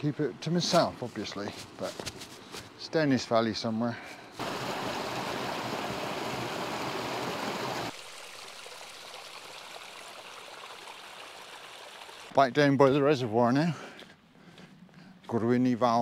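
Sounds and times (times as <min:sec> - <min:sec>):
stream flowing over rocks: 0:04.4 - 0:12.3.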